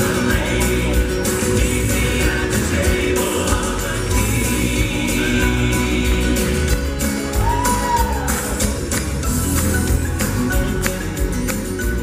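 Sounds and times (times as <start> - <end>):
gospel quartet singing: 0.0 - 9.4
bass guitar: 0.0 - 12.0
piano: 0.0 - 12.0.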